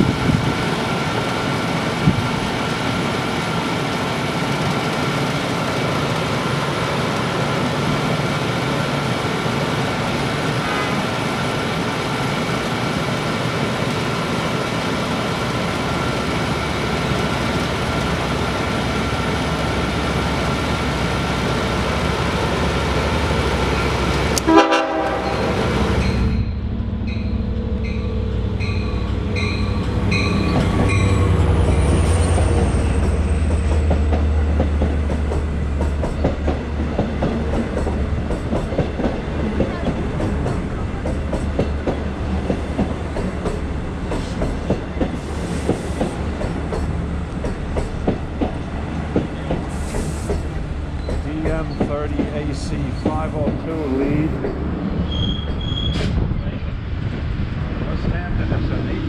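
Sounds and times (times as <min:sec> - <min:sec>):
diesel locomotive engine rumble: 0:00.0 - 0:59.0
train coaches rattling over rails: 0:00.0 - 0:59.0
train horn blast: 0:24.4 - 0:25.6
locomotive bell ringing: 0:25.1 - 0:32.4.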